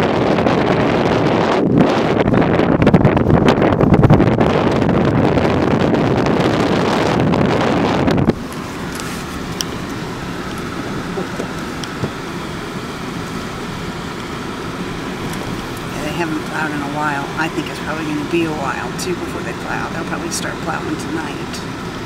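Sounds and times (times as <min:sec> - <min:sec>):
car cabin rumble: 0:00.0 - 0:22.0
car driving on snowy road: 0:00.0 - 0:22.0
wind buffeting microphone: 0:00.0 - 0:22.0.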